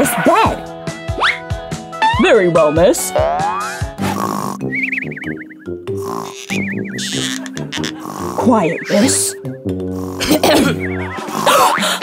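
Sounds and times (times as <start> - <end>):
background music: 0.0 - 12.0
cartoon snoring: 4.0 - 4.7, 5.9 - 9.1, 9.9 - 10.6.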